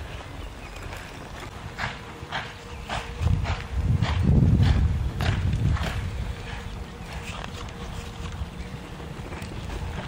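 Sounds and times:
horse hoofbeats on dirt: 0.0s - 10.0s.

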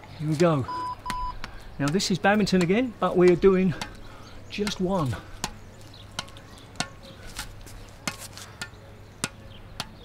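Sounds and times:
squash ball bouncing off racket: 1.8s - 10.0s.

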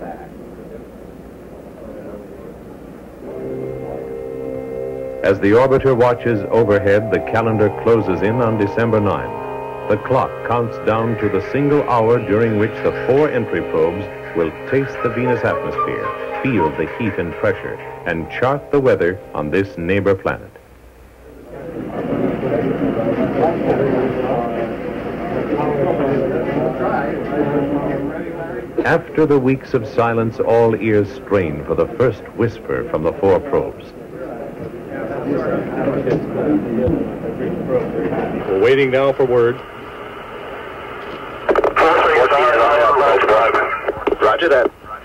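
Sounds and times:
chatter of many people: 5.2s - 20.3s, 21.2s - 40.4s
radio hiss: 38.4s - 45.0s
person talking over radio: 41.6s - 45.0s.

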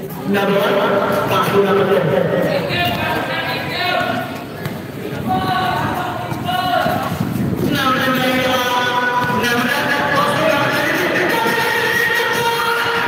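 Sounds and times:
basketball bouncing on concrete: 4.4s - 12.6s
people calling out: 5.0s - 7.2s, 8.4s - 13.0s.

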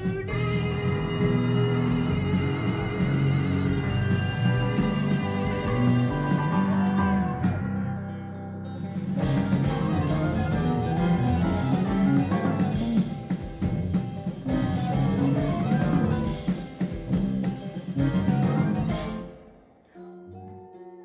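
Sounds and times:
live rock band: 0.0s - 21.0s.

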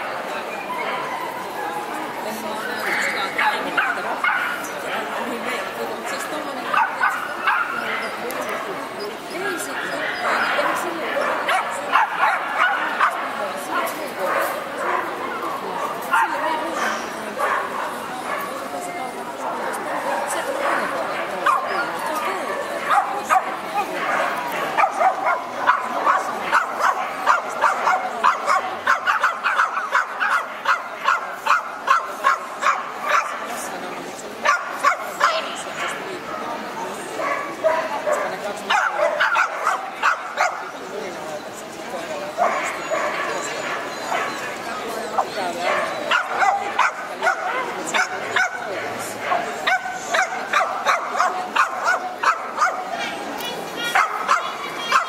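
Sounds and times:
crowd chatter: 0.0s - 55.0s.

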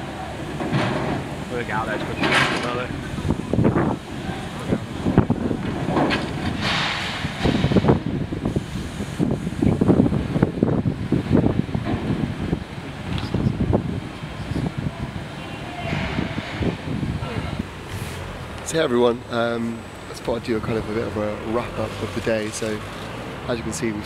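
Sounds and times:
knocking and rumbling in yard: 0.0s - 14.2s
wind buffeting microphone: 0.0s - 24.0s.

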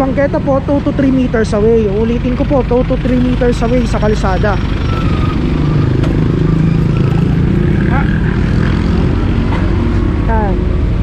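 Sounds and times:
voices: 0.0s - 4.8s, 6.9s - 8.4s, 10.3s - 10.7s
truck engine rumbling: 0.0s - 11.0s.

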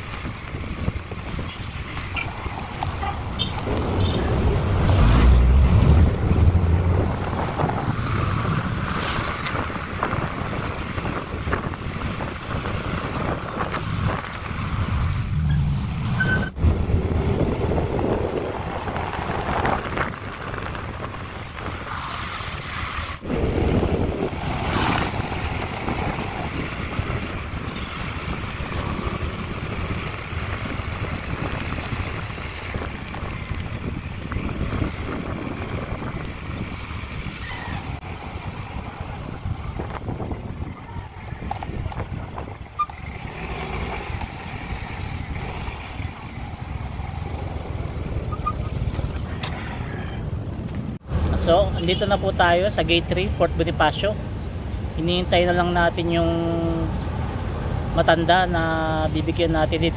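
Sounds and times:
wind buffeting microphone: 0.0s - 15.2s, 16.0s - 51.3s
moving vehicle road noise: 0.0s - 59.9s.

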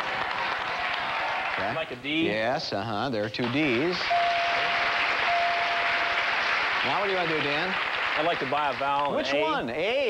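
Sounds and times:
audience applause: 0.0s - 2.0s, 3.6s - 9.6s
single tone chime: 4.1s - 6.2s.

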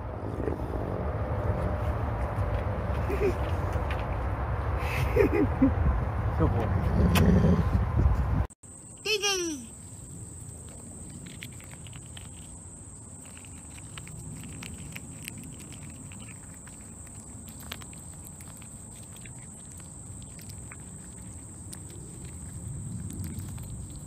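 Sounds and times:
low rumble: 0.0s - 8.5s.

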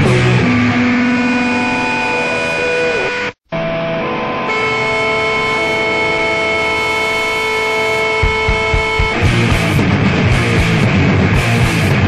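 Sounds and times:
distorted electric guitar chords: 0.0s - 12.0s
guitar feedback tones: 0.0s - 12.0s.

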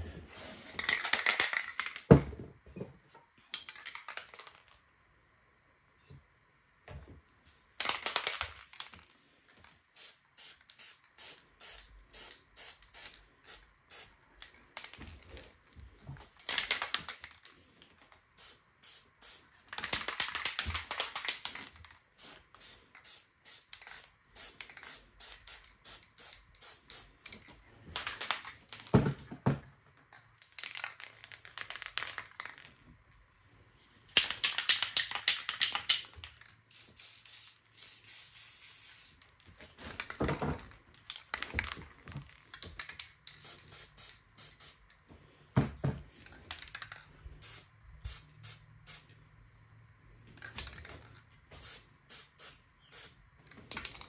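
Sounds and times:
spray can hissing: 10.0s - 14.1s, 18.4s - 19.4s, 22.2s - 27.2s, 36.7s - 39.2s, 43.4s - 44.8s, 47.4s - 49.1s, 51.6s - 53.2s.

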